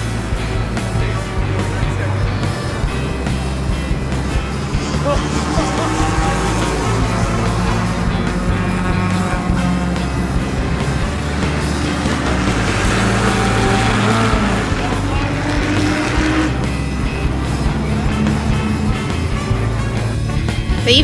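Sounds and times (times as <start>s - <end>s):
background music: 0.0s - 21.0s
race cars passing: 0.0s - 21.0s.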